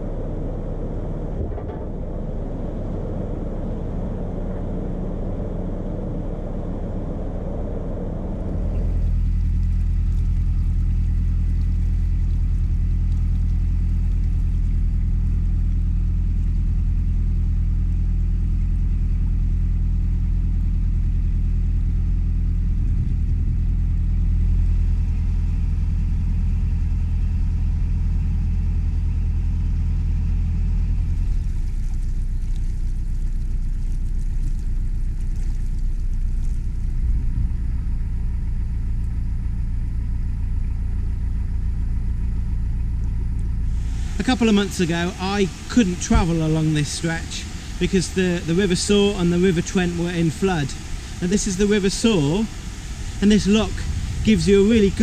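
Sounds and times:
diesel boat engine running: 0.0 - 55.0.

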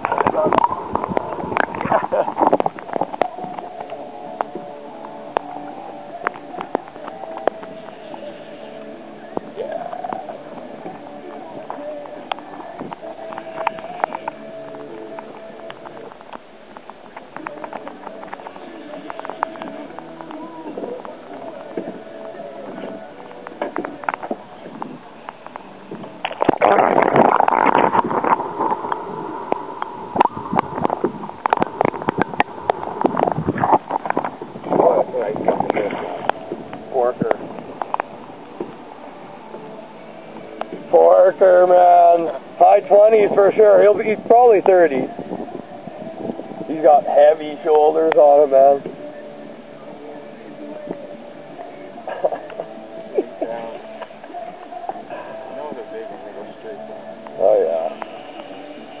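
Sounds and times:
water sloshing underwater: 0.0 - 59.0.

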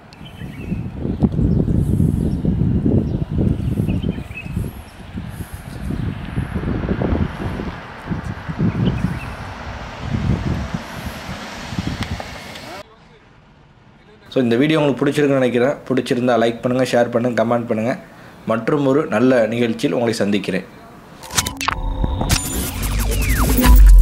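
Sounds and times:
wind buffeting microphone: 0.0 - 12.8
car passing: 5.0 - 14.1.

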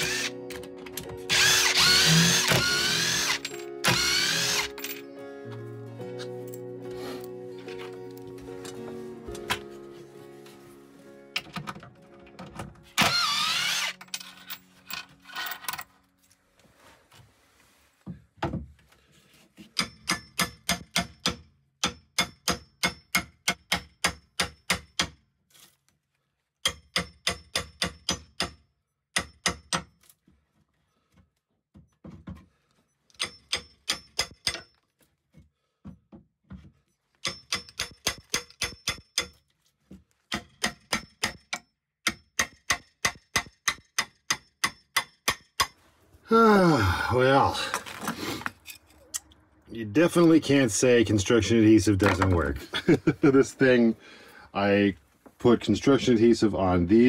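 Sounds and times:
hammer striking steel pry bar: 19.7 - 25.2, 26.6 - 29.9, 33.2 - 34.7, 37.2 - 39.4, 40.3 - 45.8.

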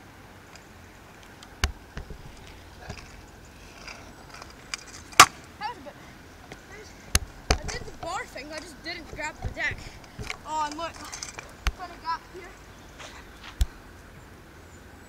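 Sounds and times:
scooter clacking on asphalt: 6.5 - 12.2.

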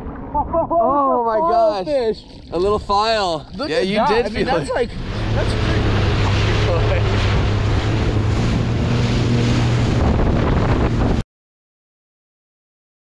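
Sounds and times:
water noise: 0.0 - 11.2
jet ski engine drone: 1.5 - 11.2
wind buffeting microphone: 1.6 - 11.2.

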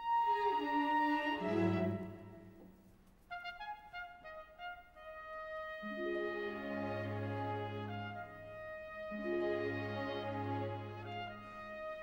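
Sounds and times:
orchestra playing softly: 0.0 - 12.0.

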